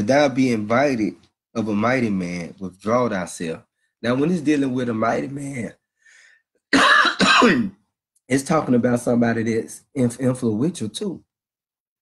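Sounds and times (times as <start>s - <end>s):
man clearing his throat: 6.8s - 7.8s.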